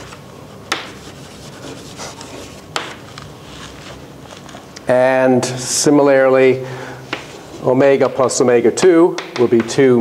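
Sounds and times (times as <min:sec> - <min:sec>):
chalk scratching on blackboard: 0:00.7 - 0:03.0
chalk tapping on board: 0:00.7 - 0:03.0, 0:09.2 - 0:09.8.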